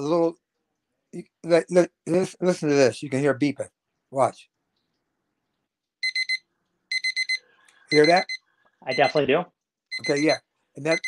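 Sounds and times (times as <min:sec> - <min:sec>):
timer alarm high beeps: 0:06.0 - 0:09.3, 0:09.9 - 0:11.0.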